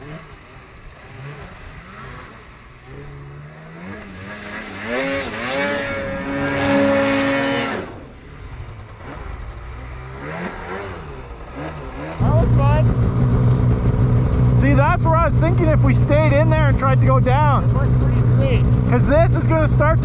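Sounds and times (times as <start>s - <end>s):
loud snowmobile engine close by: 0.0s - 20.0s
snowmobile engine revving: 0.0s - 20.0s.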